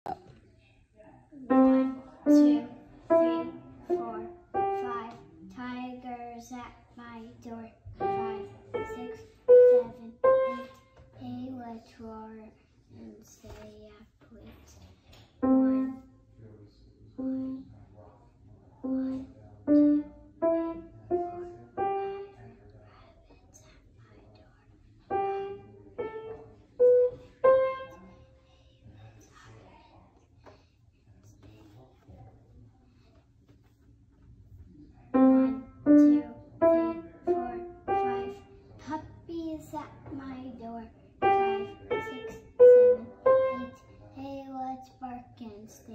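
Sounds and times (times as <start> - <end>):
piano single notes: 1.5 - 5.1, 35.2 - 38.5.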